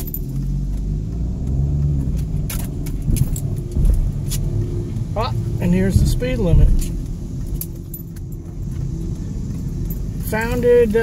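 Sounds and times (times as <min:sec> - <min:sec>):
car engine and road rumble: 0:00.0 - 0:11.0
light rattles inside car cabin: 0:00.0 - 0:11.0.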